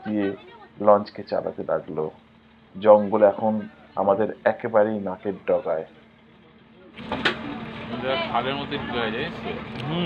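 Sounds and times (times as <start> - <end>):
motor boat engine: 0.0 - 10.0
people's voices: 2.8 - 10.0.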